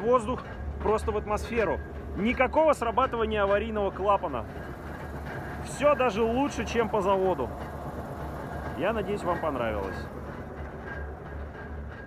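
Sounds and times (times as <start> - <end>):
bus engine idling: 0.0 - 12.0
air compressor pumping air: 4.0 - 11.9.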